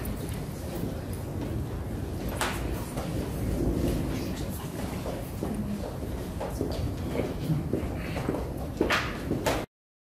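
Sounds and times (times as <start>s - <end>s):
low rumble of hall background: 0.0s - 9.7s.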